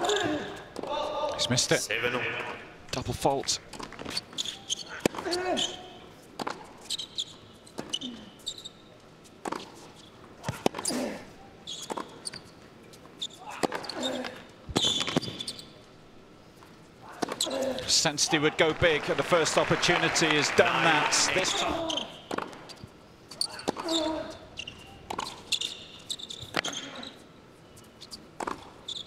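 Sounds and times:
players grunting: 17.4s - 22.1s.

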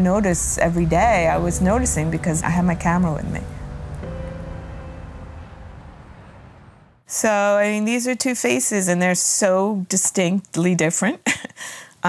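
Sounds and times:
low background rumble: 0.0s - 7.0s.

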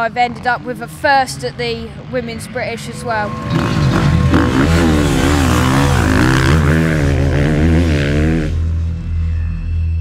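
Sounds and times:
motocross bike engine revving: 0.0s - 8.9s.

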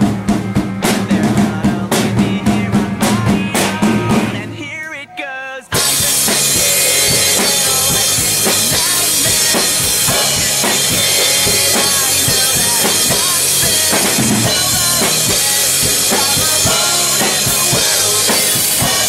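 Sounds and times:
drum kit playing fast rock beat: 0.0s - 4.7s, 5.7s - 19.0s
pop-punk song recording: 0.0s - 19.0s.

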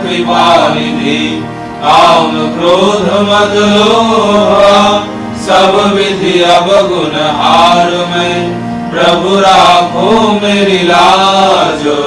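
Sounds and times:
chanted prayer song: 0.0s - 12.0s
steady held drone: 0.0s - 12.0s.

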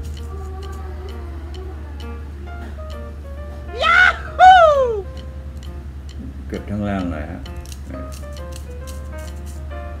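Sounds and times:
background music: 0.0s - 10.0s
razor shaving stubble: 7.5s - 9.7s.

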